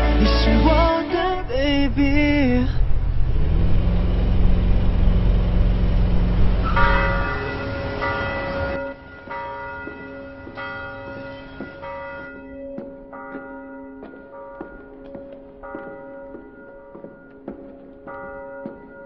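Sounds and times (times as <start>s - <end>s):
person singing: 0.0s - 2.9s
car engine rumbling: 0.6s - 9.4s
church bells tolling: 4.5s - 19.0s.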